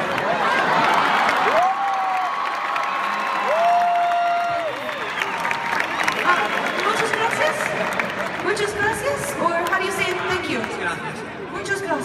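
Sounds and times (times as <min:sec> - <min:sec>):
crowd cheering and screaming: 0:00.2 - 0:07.8.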